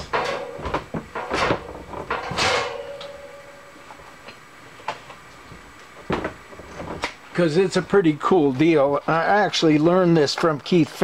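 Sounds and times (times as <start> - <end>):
steel parts knocking and clinking: 0.0 - 4.0
short metallic ring: 2.2 - 3.8.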